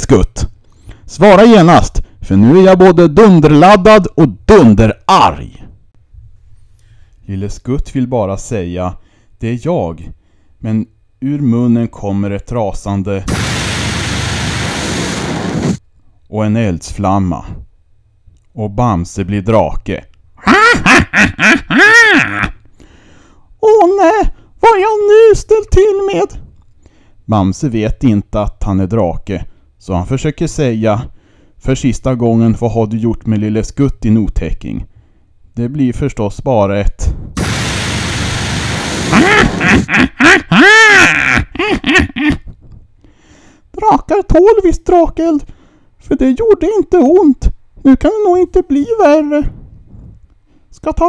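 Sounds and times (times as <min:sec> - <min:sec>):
rushing blast of fire: 0:13.3 - 0:15.8, 0:37.4 - 0:39.9
dragon fire-breathing roar: 0:37.4 - 0:39.6.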